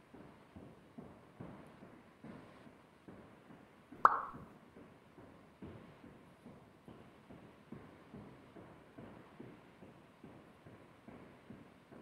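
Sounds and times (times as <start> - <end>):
short pop: 4.1 - 4.4.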